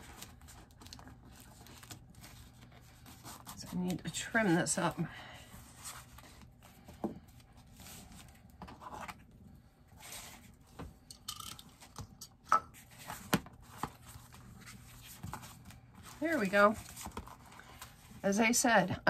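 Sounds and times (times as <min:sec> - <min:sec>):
paper and card rustling: 0:00.0 - 0:09.3, 0:12.8 - 0:18.6.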